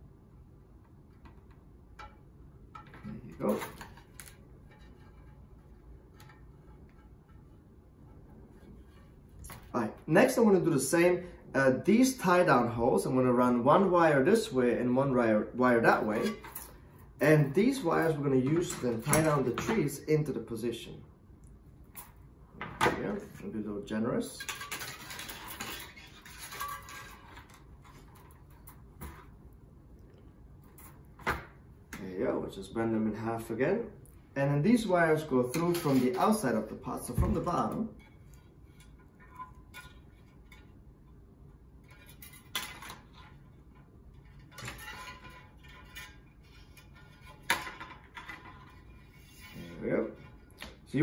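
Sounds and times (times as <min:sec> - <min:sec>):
metal wire scratchy rubbing: 0:03.0 - 0:09.5, 0:24.4 - 0:28.9, 0:41.8 - 0:50.6.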